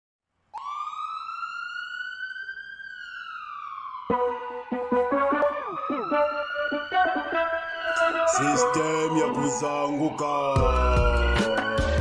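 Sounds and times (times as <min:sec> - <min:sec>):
wailing siren-like tone: 0:00.6 - 0:12.0.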